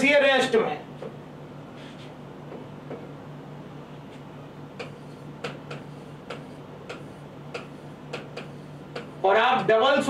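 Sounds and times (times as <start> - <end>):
pen tapping on writing board: 4.8 - 9.2.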